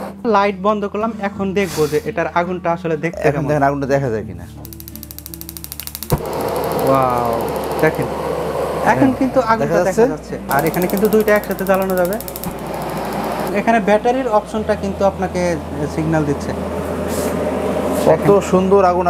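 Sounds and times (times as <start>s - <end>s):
voices or music: 0.0s - 19.0s
gas stove igniter ticking: 4.6s - 8.7s, 10.5s - 13.6s
burner click: 4.6s - 8.8s, 10.5s - 13.6s
gas flame rushing: 4.6s - 13.7s.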